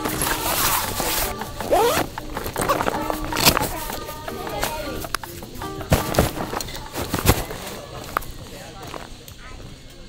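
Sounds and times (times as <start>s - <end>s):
background music: 0.0s - 9.2s
bag zipper being pulled: 0.2s - 3.9s.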